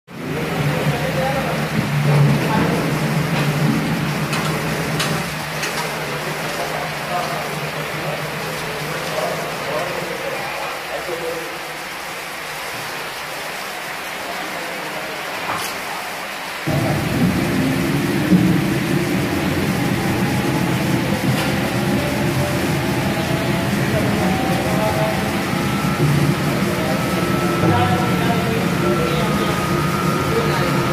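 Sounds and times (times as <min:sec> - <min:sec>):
spin dryer rumbling: 0:00.1 - 0:10.7, 0:16.0 - 0:30.9
low machine hum: 0:00.2 - 0:10.7, 0:16.7 - 0:30.9
faint rising whine: 0:16.7 - 0:30.9.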